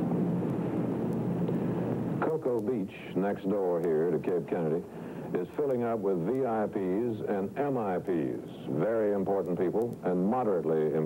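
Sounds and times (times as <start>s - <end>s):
low hum: 0.0s - 10.0s.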